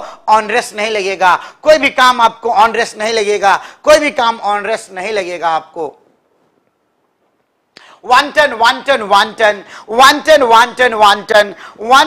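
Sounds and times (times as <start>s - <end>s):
person speaking: 0.0s - 6.1s, 7.8s - 12.0s
intake of breath: 9.7s - 9.9s.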